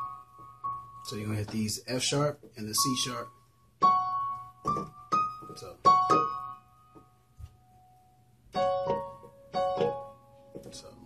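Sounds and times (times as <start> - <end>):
piano notes on keyboard: 0.0 - 11.0.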